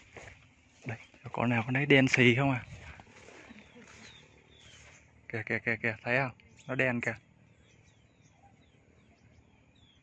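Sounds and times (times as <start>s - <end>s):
high bird chirps: 0.0s - 10.0s.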